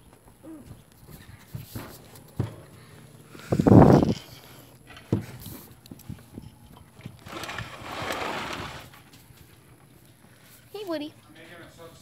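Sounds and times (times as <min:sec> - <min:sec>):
microphone rubbing against clothing: 0:00.5 - 0:06.4.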